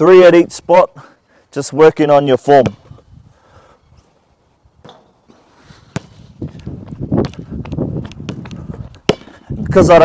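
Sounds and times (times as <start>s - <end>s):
basketball bouncing: 2.6s - 2.9s, 5.9s - 9.3s
footsteps on hard court: 4.8s - 9.4s.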